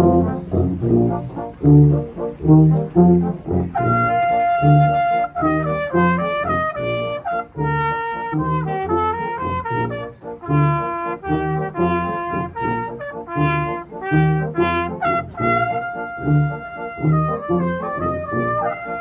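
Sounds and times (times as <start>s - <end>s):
cornet melody: 0.0s - 19.0s
low bass notes: 0.0s - 19.0s.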